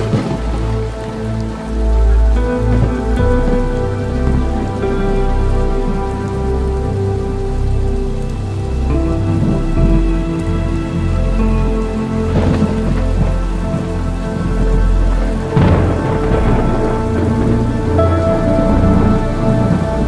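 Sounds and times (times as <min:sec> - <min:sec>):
thunder clap: 0:00.0 - 0:01.2, 0:12.3 - 0:13.8, 0:15.5 - 0:20.0
ambient music chords: 0:00.0 - 0:20.0
deep pulsing bass: 0:00.0 - 0:20.0
rain: 0:00.0 - 0:20.0.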